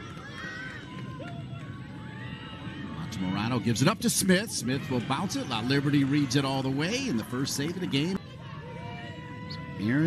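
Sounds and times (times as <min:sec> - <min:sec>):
faint distant voices and shouts: 0:00.0 - 0:10.0.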